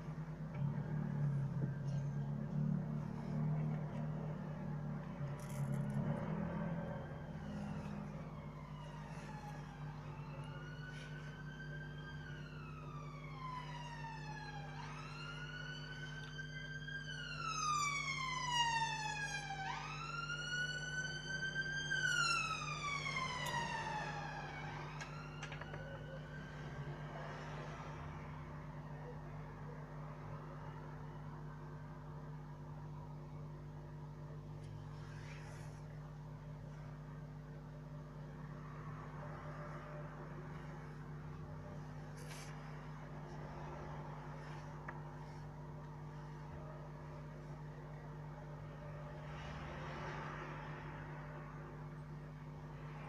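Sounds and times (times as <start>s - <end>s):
wailing siren: 0.0s - 32.7s, 37.2s - 53.0s
steady low hum: 0.0s - 49.7s.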